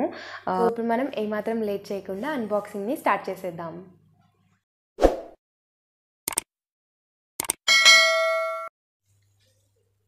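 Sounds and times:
bright bell ding: 0:07.7 - 0:08.7.

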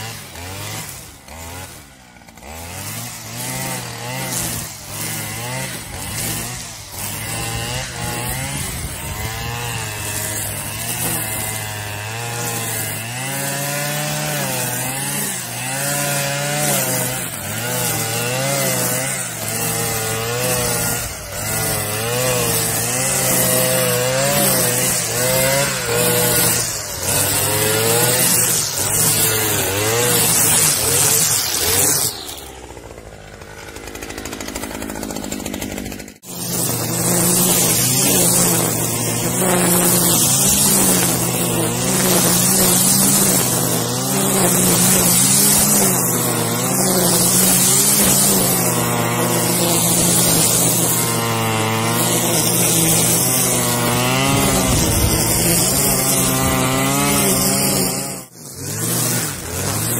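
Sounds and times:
brush cutter cutting grass: 0:00.0 - 0:59.9.

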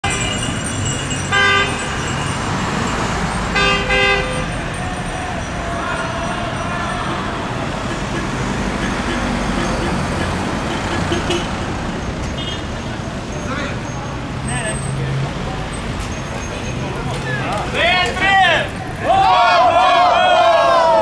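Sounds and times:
road traffic noise: 0:00.0 - 0:21.0
vehicle horn honking: 0:01.3 - 0:02.0, 0:03.5 - 0:04.6, 0:07.9 - 0:11.6.

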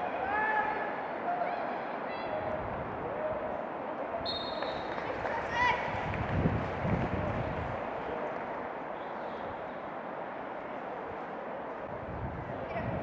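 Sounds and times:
short high whistle: 0:04.2 - 0:04.9.

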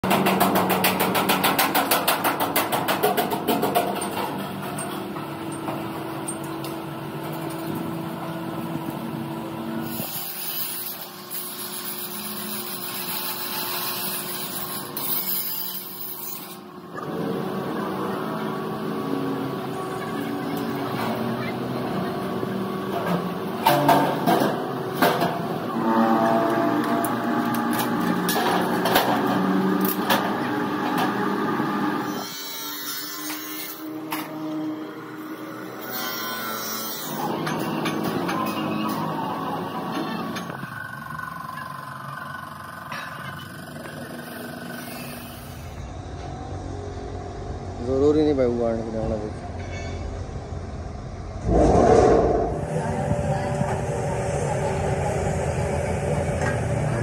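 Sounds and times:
angle grinder grinding steel: 0:35.3 - 0:37.7.

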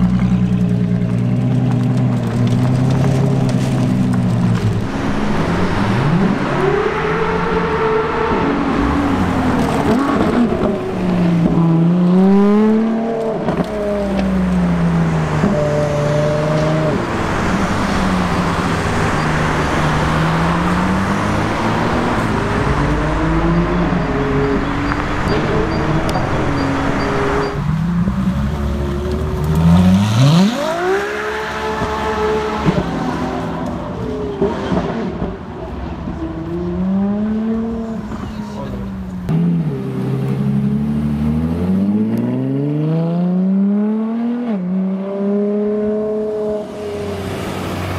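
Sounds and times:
sports car engine revving: 0:28.3 - 0:35.4.

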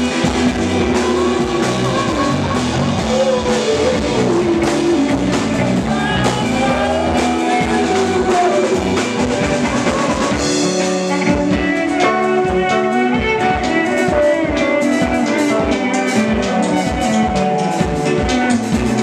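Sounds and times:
drum kit: 0:00.0 - 0:19.0
electric bass: 0:00.0 - 0:19.0
electric guitar: 0:00.0 - 0:19.0.

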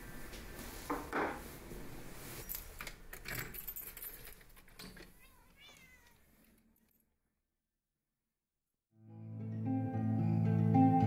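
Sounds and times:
jangling clinking clicks: 0:02.4 - 0:05.1
cat meowing: 0:05.2 - 0:06.3.

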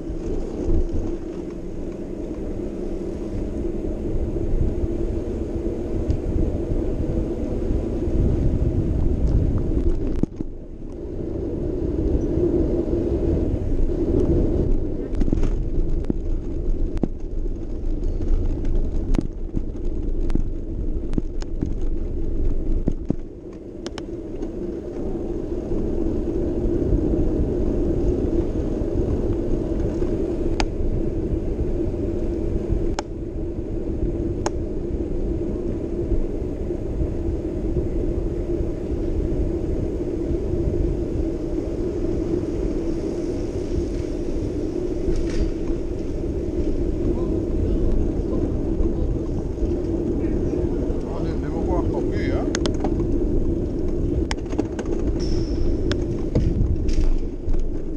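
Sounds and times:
muffled wind rumble: 0:00.0 - 0:57.9.

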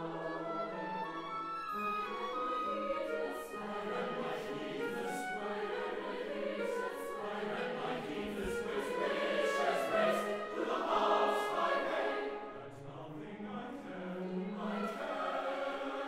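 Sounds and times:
mixed choir singing: 0:00.0 - 0:16.0.

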